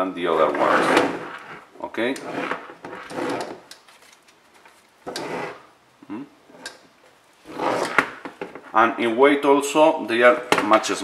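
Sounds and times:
plastic rubbing on wooden table: 0.3 - 3.7, 5.0 - 5.7, 7.4 - 8.7.

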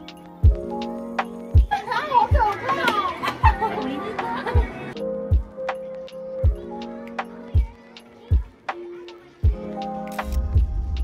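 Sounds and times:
music with kick-drum beat: 0.0 - 2.5, 4.6 - 8.8, 9.4 - 11.0
people laughing: 1.6 - 5.0
excited high-pitched voices: 1.7 - 5.0.

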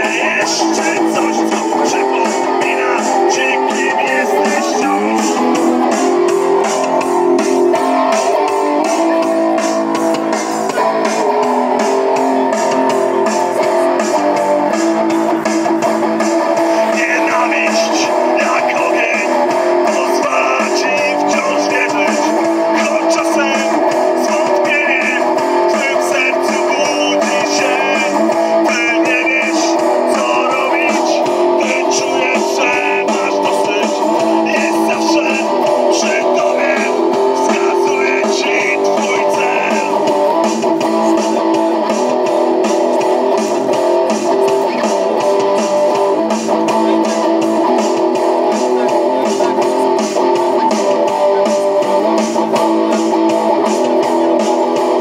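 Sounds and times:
electric guitar through loudspeakers: 0.0 - 55.0.

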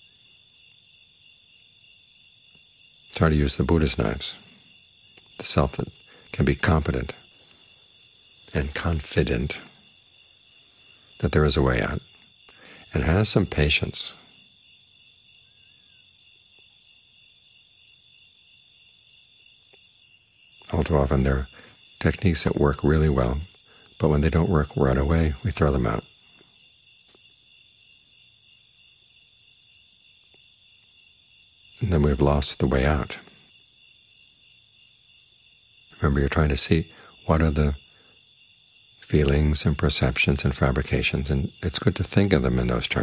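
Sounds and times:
crickets trilling: 0.0 - 43.0.

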